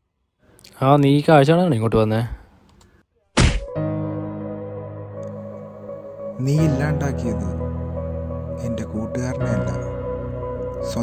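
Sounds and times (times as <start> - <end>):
musical drone chord: 3.8 - 11.0.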